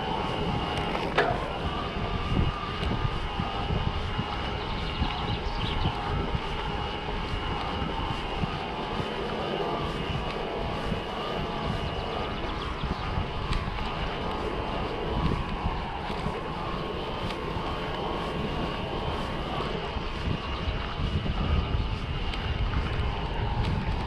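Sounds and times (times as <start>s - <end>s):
electric bike motor whining: 0.0s - 24.0s
wind on microphone: 0.0s - 24.0s.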